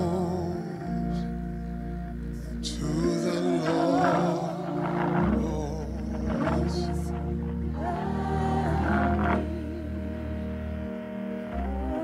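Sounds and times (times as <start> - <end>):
held bass: 0.0 - 12.0
person singing wavering note: 0.0 - 12.0
sustained keyboard chords: 0.0 - 12.0.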